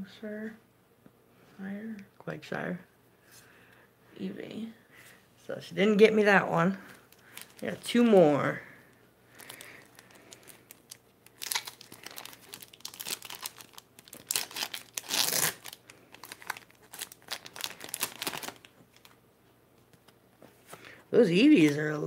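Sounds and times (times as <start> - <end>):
foil pack tearing and crinkling: 7.1 - 7.8, 9.4 - 19.2.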